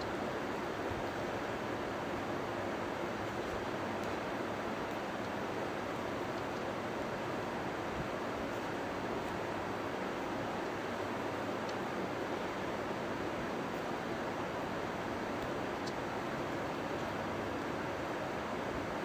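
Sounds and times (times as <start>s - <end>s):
steady background hiss: 0.0s - 19.0s.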